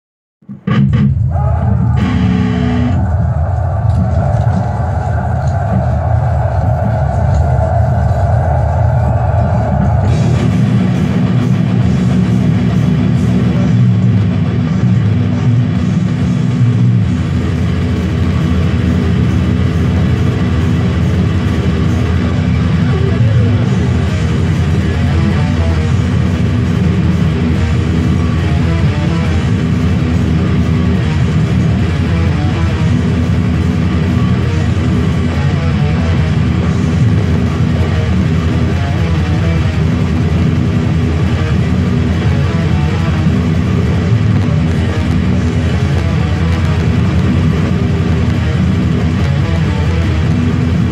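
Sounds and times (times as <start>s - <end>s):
distorted electric guitar riff: 0.4s - 50.9s.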